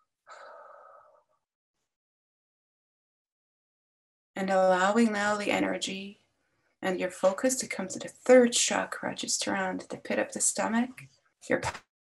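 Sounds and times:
woman breathing: 0:00.2 - 0:01.4
woman speaking: 0:04.4 - 0:06.2, 0:06.8 - 0:11.8.

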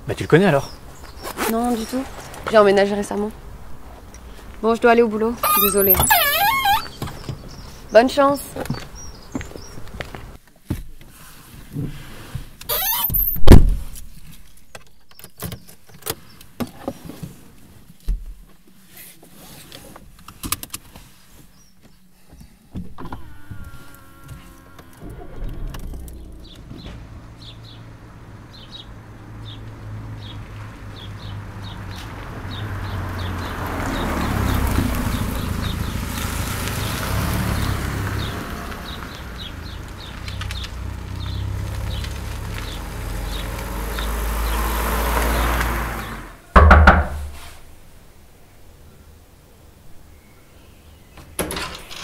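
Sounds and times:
loud thump: 0:13.3 - 0:14.0, 0:25.0 - 0:27.8, 0:46.6 - 0:47.5.

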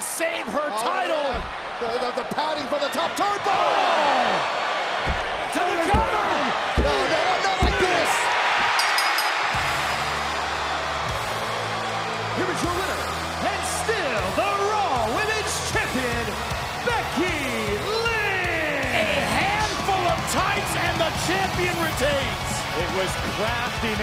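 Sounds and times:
arena crowd shouting: 0:00.0 - 0:24.0.

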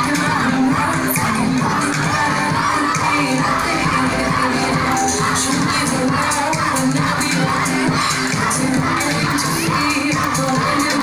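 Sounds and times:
crowd shouting and cheering: 0:00.0 - 0:11.0
loud music: 0:00.0 - 0:11.0.

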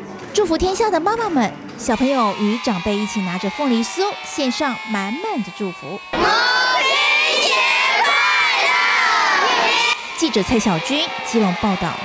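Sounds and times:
group shouting in unison: 0:01.8 - 0:12.0.

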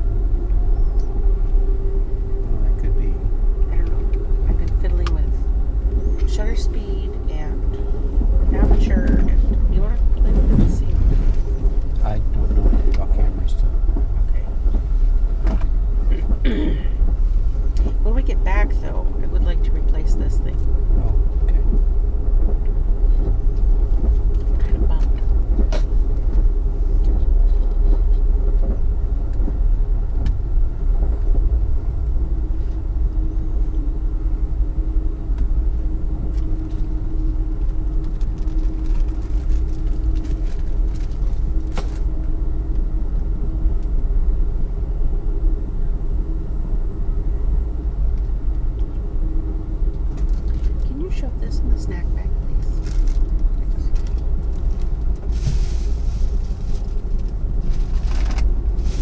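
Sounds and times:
faint steady hum: 0:00.0 - 0:59.0
train car rumbling on rails: 0:00.0 - 0:59.0.

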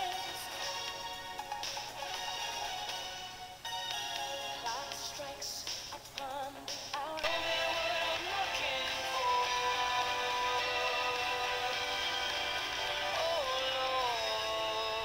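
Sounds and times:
pop song playing: 0:00.0 - 0:15.0.

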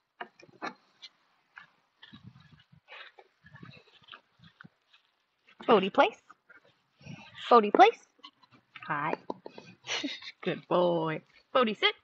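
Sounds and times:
light scuffs and ticks: 0:00.5 - 0:10.6.

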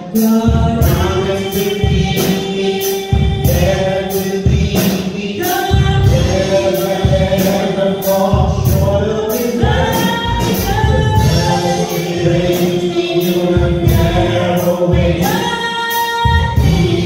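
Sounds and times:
bass: 0:00.0 - 0:17.0
gospel group singing in harmony: 0:00.0 - 0:17.0.

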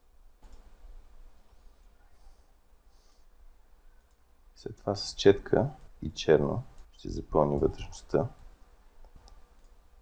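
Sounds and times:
faint computer mouse clicks: 0:04.0 - 0:04.3, 0:08.4 - 0:09.8
person speaking: 0:04.6 - 0:08.4.

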